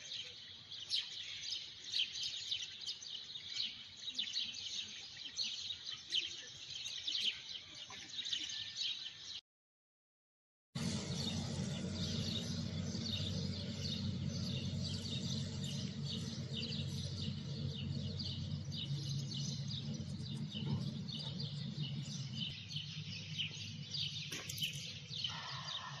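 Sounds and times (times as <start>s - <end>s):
small birds chirping: 0.0s - 9.4s, 10.8s - 26.0s
steady low hum: 10.8s - 25.3s.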